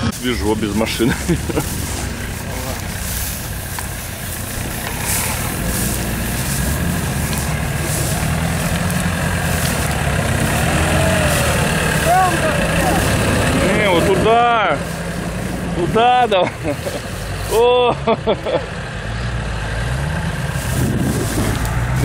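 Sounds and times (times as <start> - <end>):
off-road vehicle engine running: 0.0 - 22.0.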